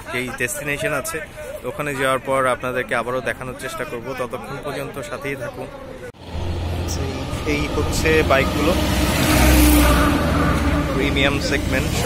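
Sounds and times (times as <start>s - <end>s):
voices talking: 0.0s - 12.0s
vehicle passing on highway: 6.2s - 12.0s.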